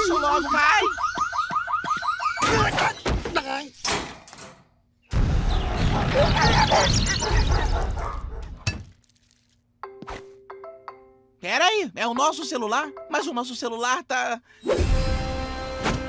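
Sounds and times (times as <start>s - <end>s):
wailing shop alarm: 0.0s - 3.0s
birds chirping and squawking: 0.0s - 3.6s, 5.0s - 8.4s.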